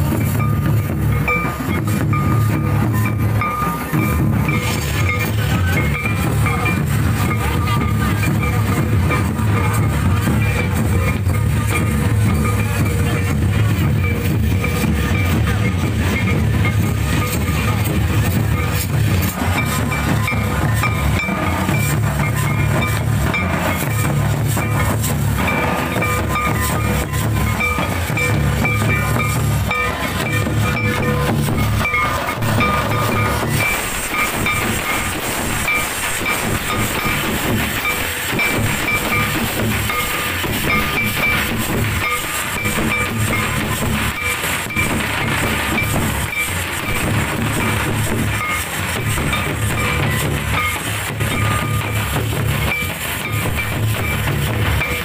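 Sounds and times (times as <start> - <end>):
barrel drums playing dance rhythm: 0.0 - 55.0
steady high note: 0.0 - 55.0.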